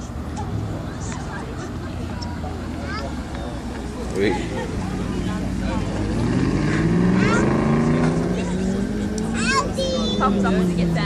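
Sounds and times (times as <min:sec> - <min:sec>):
car engine pulling away: 0:00.0 - 0:11.0.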